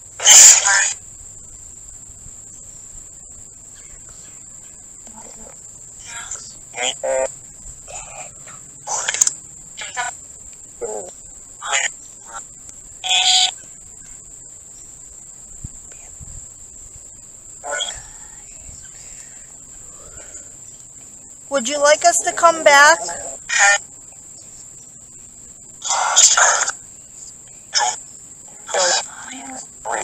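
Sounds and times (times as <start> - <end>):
radio voice fragments and static: 0.0 - 1.0, 5.1 - 13.8, 17.6 - 25.2, 25.8 - 30.0
cricket trill: 0.0 - 30.0.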